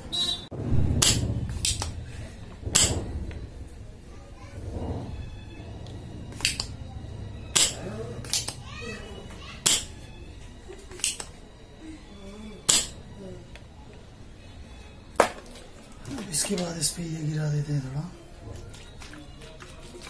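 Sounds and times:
desoldering pump snapping: 0.8 - 3.8, 4.6 - 11.4, 12.6 - 14.0.

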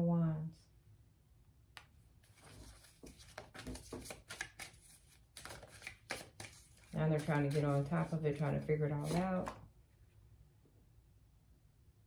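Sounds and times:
cards being shuffled: 2.2 - 9.7.

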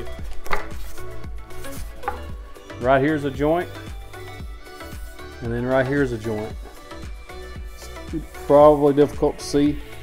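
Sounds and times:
wooden knock: 0.4 - 0.7, 2.0 - 2.3.

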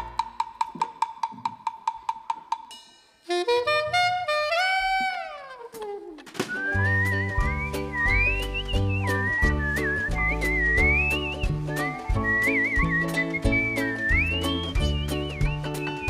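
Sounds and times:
ukulele strumming: 6.4 - 16.0
whistled melody with vibrato: 6.5 - 16.0
low bass notes: 6.8 - 15.9
steady beat: 6.8 - 16.0.

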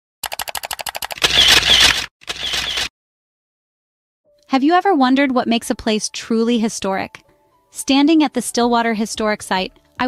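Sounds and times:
camera shutter clicks: 0.6 - 2.9.

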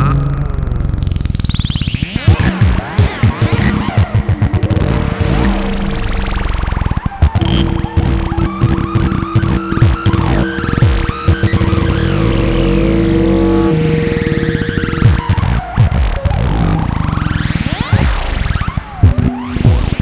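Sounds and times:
electronic synthesizer pulses and glides: 0.0 - 20.0
held synthesizer tone: 7.2 - 15.8.

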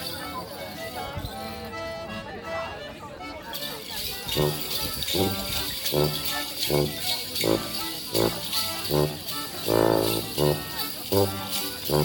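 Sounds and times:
accordion playing dance tune: 0.0 - 12.0
bells jingling: 3.5 - 12.0.

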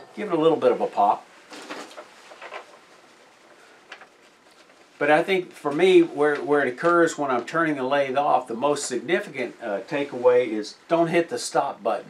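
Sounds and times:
paper sheets rustling: 0.2 - 7.6.

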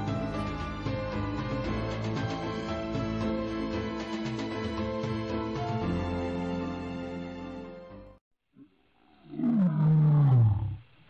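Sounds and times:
lion roaring: 9.0 - 11.0.

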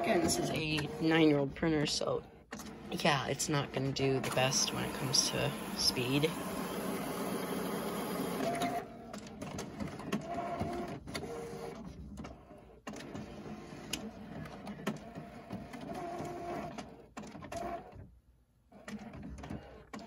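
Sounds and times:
printer motor whines: 3.8 - 11.8.

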